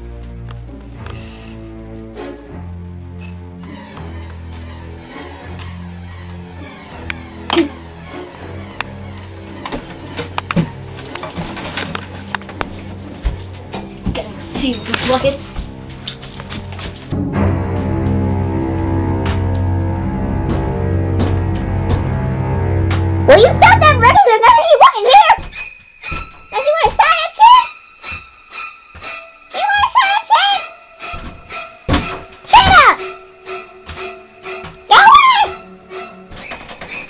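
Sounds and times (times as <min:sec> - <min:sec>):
music with sustained tones: 0:00.0 - 0:37.0
high-pitched voice sliding in pitch: 0:29.5 - 0:30.8, 0:34.4 - 0:35.6.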